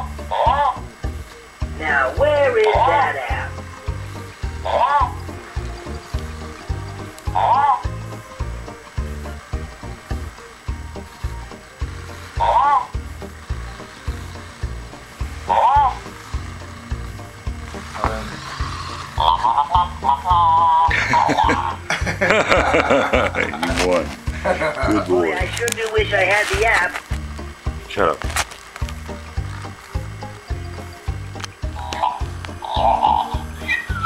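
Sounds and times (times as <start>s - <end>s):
warbling tones: 0.0s - 21.8s
electronic game music: 0.0s - 34.0s
toy robot chirps: 4.4s - 8.2s, 11.8s - 21.8s, 28.9s - 34.0s.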